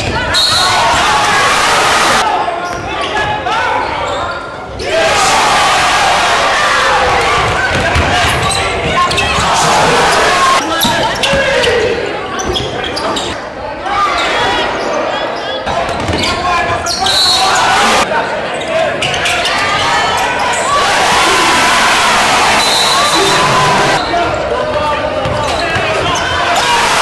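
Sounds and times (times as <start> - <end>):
people shouting and chatting: 0.0 - 27.0.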